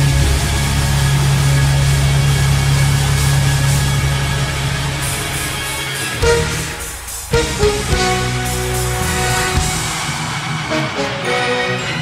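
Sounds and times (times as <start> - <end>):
distorted electric guitar and bass note: 0.0 - 10.2.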